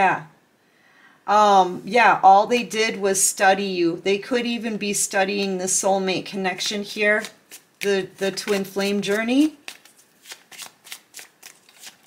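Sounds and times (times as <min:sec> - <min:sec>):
cards being shuffled: 0:06.6 - 0:12.0.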